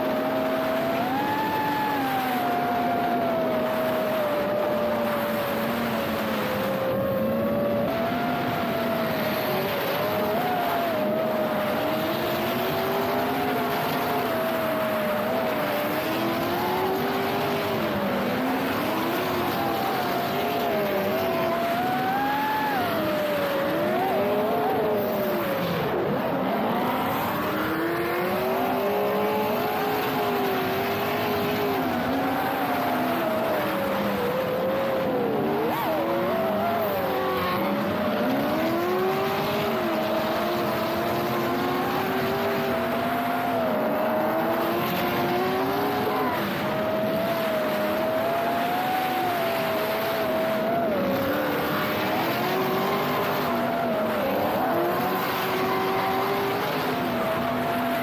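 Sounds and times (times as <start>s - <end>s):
car engine revving: 0.0s - 58.0s.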